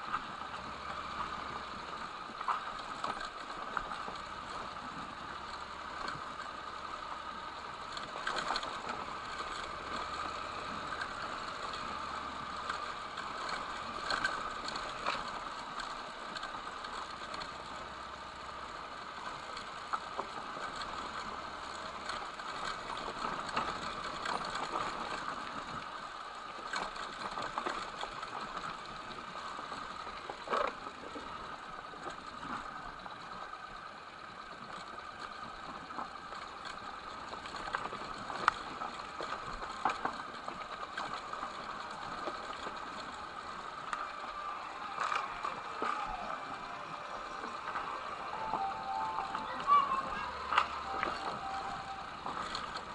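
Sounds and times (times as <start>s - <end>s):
motorcycle engine rattling: 0.0s - 52.9s.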